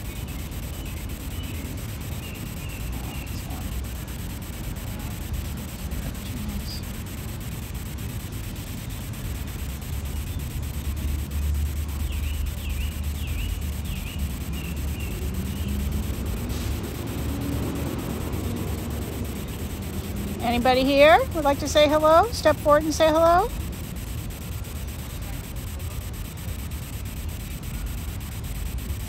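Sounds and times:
small bird chirping: 0.0 - 5.3, 6.0 - 29.0
steady outdoor hiss: 0.0 - 29.0.

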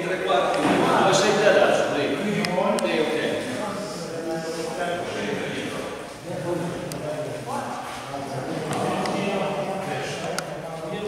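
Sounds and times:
people chattering in a hall: 0.0 - 11.0.

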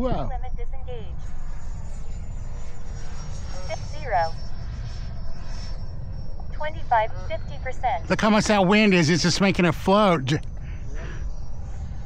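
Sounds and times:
distant rc jets whining: 0.0 - 12.0.

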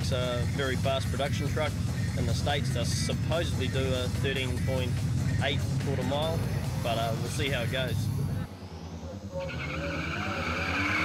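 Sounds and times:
racing vehicle engine: 0.0 - 11.0.

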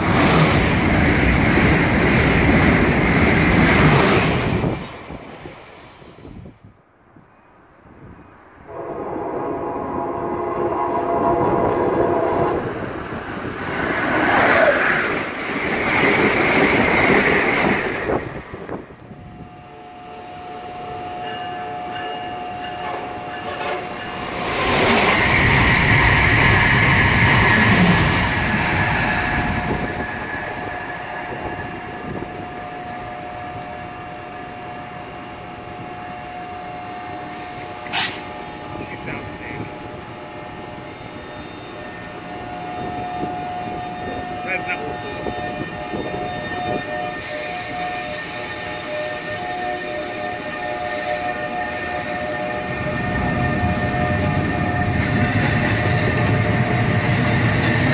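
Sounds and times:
train rumbling on rails: 0.0 - 57.9
train horn chord: 8.7 - 13.0, 20.7 - 24.1, 41.4 - 55.0.

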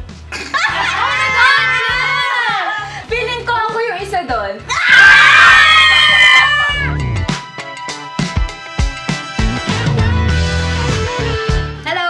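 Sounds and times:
women screaming: 0.6 - 3.1, 4.7 - 7.0.

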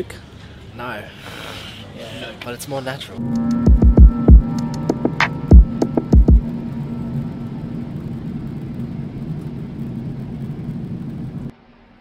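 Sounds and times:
deep thumps: 3.6 - 4.5, 5.5 - 6.4
airliner cabin rumble: 4.1 - 11.5.

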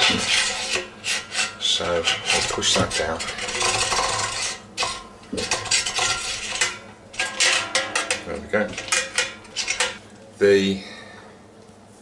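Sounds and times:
metal tube scraping metal keg: 0.0 - 10.0.

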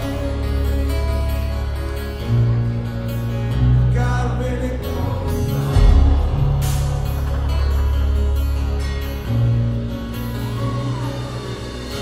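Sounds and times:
acoustic guitars playing chords: 0.0 - 12.0
deep bass: 0.0 - 12.0.

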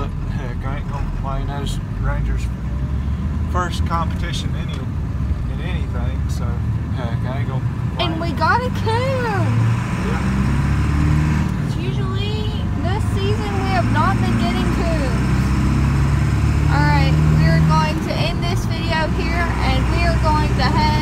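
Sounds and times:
vehicle rumble inside cab: 0.0 - 21.0.

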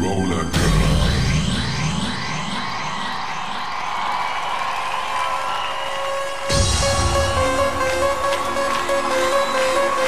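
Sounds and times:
faint crowd cheering: 2.4 - 10.0.

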